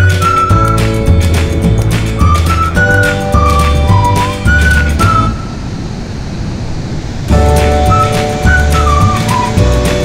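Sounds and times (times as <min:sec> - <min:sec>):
whistled music note: 0:00.0 - 0:05.6, 0:07.3 - 0:10.0.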